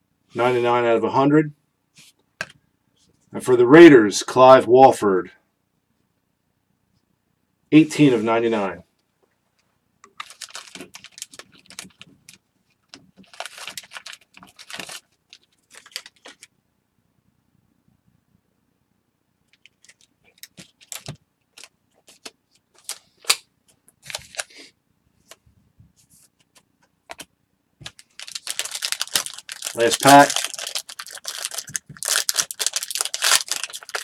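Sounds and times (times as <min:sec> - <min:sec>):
plastic and foil crinkling: 0:10.2 - 0:16.5, 0:19.6 - 0:23.3, 0:24.0 - 0:24.7, 0:27.8 - 0:34.0.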